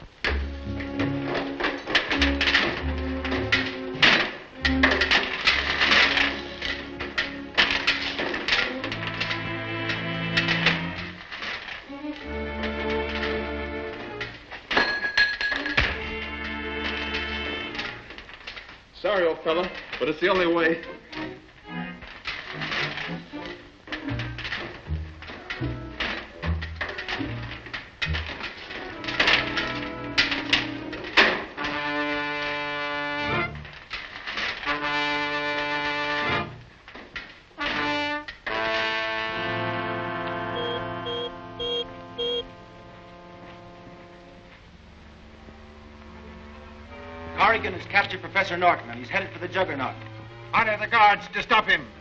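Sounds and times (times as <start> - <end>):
orchestral music with brass: 0.4 - 14.5, 15.8 - 18.2, 20.8 - 33.8, 34.6 - 36.7, 37.6 - 52.0.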